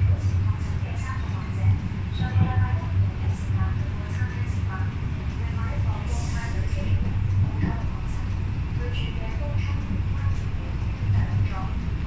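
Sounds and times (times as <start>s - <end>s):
faint voices: 0.0s - 12.0s
train car rumbling: 0.0s - 12.0s.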